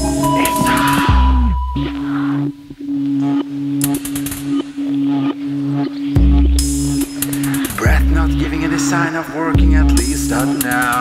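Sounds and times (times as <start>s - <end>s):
electronic music with pulsing bass: 0.0s - 11.0s.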